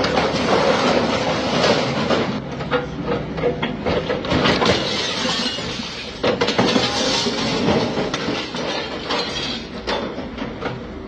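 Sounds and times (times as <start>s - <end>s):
metal and wood debris clattering: 0.0s - 10.8s.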